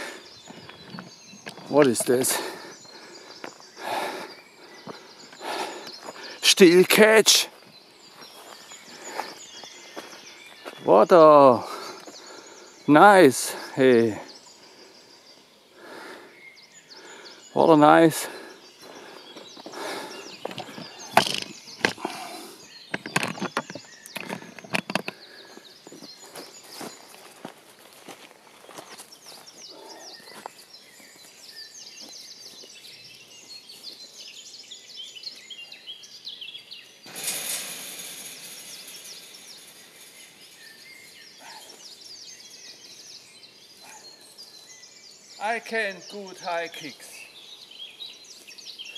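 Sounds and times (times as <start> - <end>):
small birds chirping: 0.0 - 48.9
camera handling knocks: 20.5 - 22.0.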